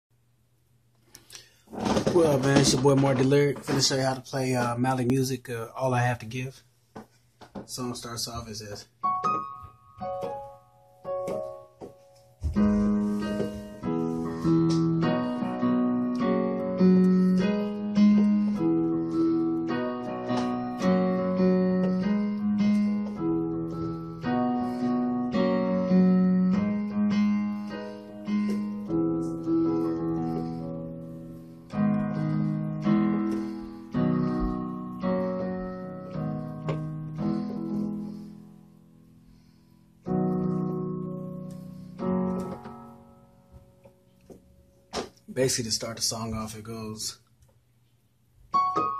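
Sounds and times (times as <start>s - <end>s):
piano chords ringing: 1.9s - 6.5s, 7.7s - 47.1s, 48.5s - 48.9s.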